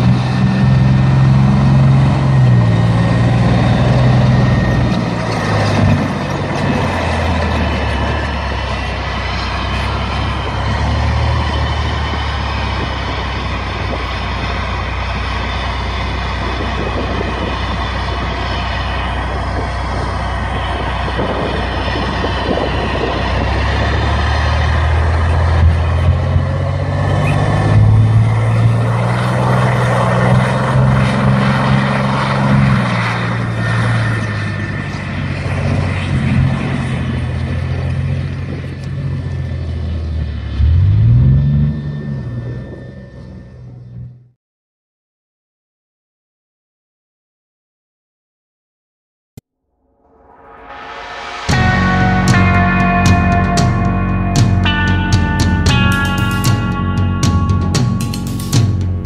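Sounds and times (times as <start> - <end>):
engine revving: 0.0 - 44.2, 50.2 - 59.0
tank diesel engine running: 0.0 - 44.3, 51.3 - 59.0.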